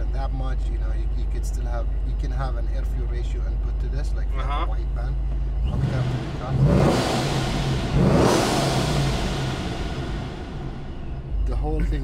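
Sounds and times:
car engine revs dropping: 5.6s - 11.4s.

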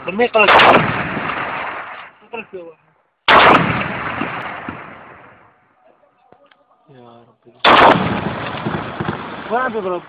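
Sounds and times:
artillery shell blast: 0.4s - 2.2s, 3.3s - 5.5s, 7.6s - 10.0s.

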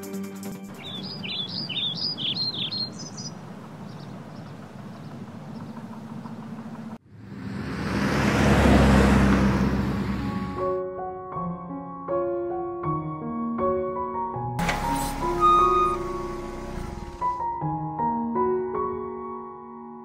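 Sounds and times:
birds chirping: 0.7s - 7.0s
outdoor ambience: 0.7s - 10.4s, 14.6s - 17.5s
car driving past: 3.2s - 10.7s.

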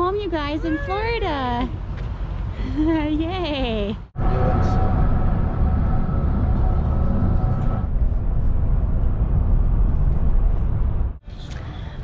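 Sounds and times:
car road and wind noise: 0.0s - 12.0s.

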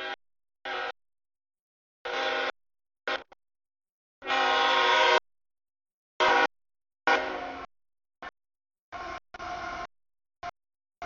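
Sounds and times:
locomotive air horn blasts: 0.0s - 1.0s, 2.0s - 3.4s, 4.2s - 5.3s, 6.2s - 8.3s, 8.9s - 9.9s.

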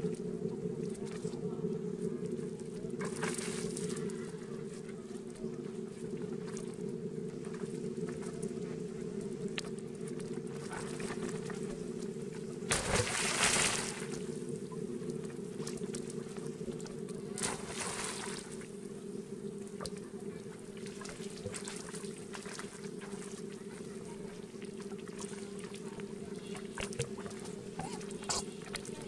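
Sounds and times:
steady low rumble: 0.0s - 25.1s
water splashing: 3.0s - 4.4s, 9.5s - 11.8s, 12.6s - 14.4s, 15.2s - 18.7s, 19.8s - 29.0s.

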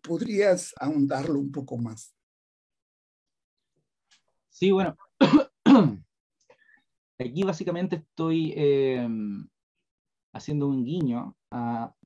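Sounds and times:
man clearing his throat: 5.2s - 6.0s.

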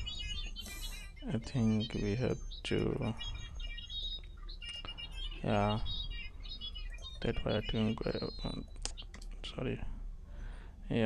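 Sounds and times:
faint high chirps: 0.0s - 10.6s
steady low hum: 0.0s - 11.0s.

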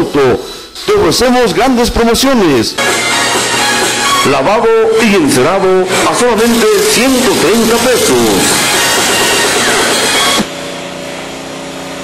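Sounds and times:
car-wash machinery motor hum: 0.0s - 12.0s.

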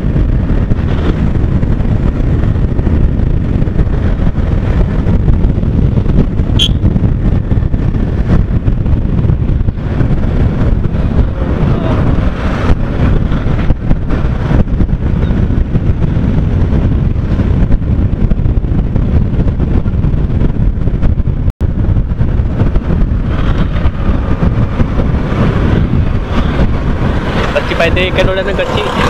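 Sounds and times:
wind rushing on microphone: 0.0s - 29.0s.

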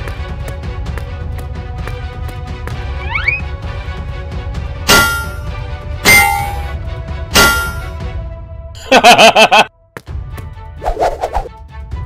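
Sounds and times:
background music with steady beat: 0.0s - 12.0s
crowbar clanging on metal box: 4.9s - 5.5s, 6.1s - 6.7s, 7.4s - 7.9s.

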